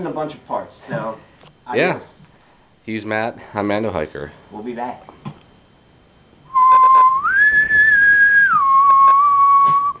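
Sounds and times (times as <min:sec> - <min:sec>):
person whistling: 0:06.5 - 0:10.0.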